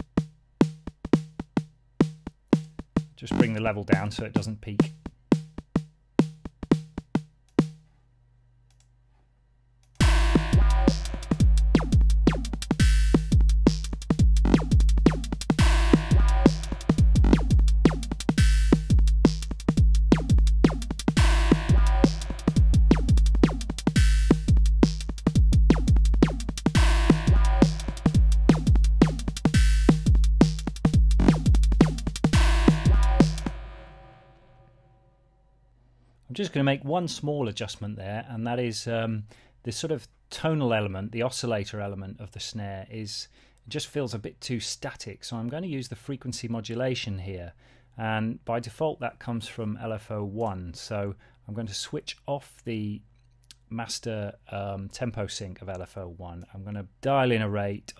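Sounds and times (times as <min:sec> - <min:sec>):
synthesized drum beat: 0:00.0 - 0:07.8, 0:10.0 - 0:34.2.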